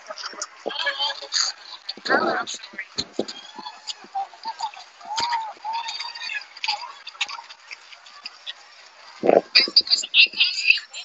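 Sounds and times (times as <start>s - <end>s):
broken voice over video call: 9.2s - 11.0s.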